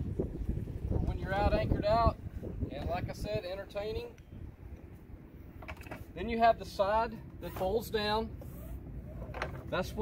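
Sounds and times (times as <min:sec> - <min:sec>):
wind on microphone: 0:00.0 - 0:04.8.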